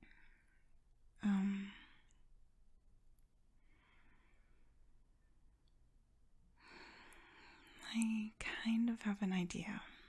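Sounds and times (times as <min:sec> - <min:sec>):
faint breath: 0:03.6 - 0:04.8, 0:06.6 - 0:07.8.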